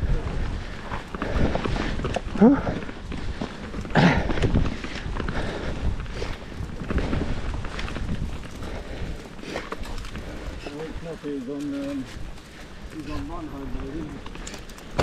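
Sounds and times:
bike clicks and rattles: 0.0 - 15.0
bike tyres on dirt: 0.0 - 15.0
wind rumble on microphone: 0.0 - 15.0.

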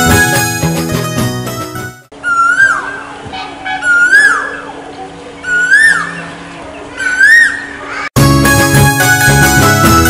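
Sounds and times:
bird calling whistled note: 2.2 - 4.8, 5.4 - 6.4, 7.0 - 7.8.

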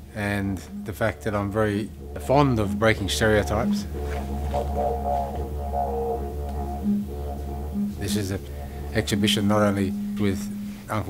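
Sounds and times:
didgeridoo drone: 0.2 - 10.7.

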